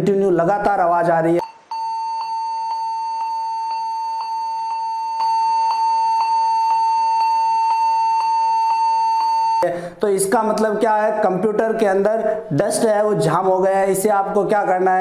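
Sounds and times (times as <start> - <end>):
computer warning beep: 1.4 - 9.7.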